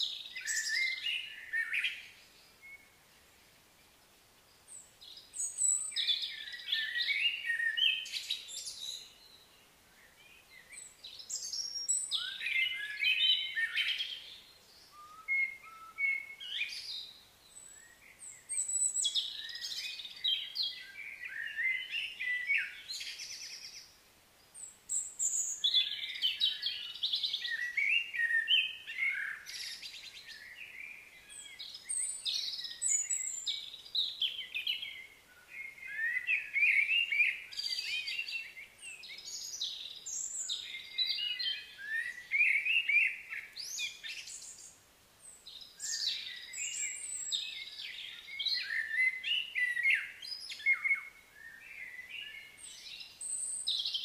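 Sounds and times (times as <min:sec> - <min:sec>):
birds chirping and trilling: 0:00.0 - 0:54.0.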